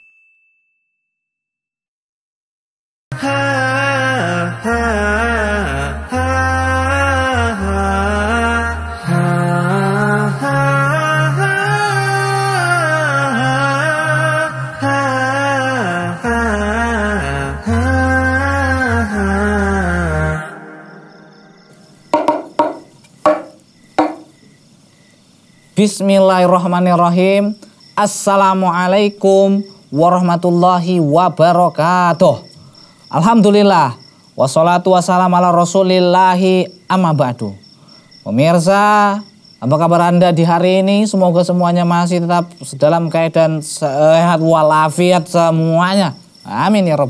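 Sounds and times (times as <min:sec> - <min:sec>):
bell-like ding ringing: 0:00.0 - 0:01.3
intro music: 0:03.1 - 0:22.0
sharp ringing knocks: 0:22.1 - 0:24.6.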